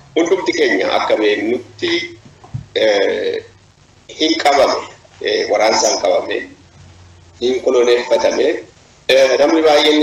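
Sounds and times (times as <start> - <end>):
person hesitation sound: 7.4 - 10.0.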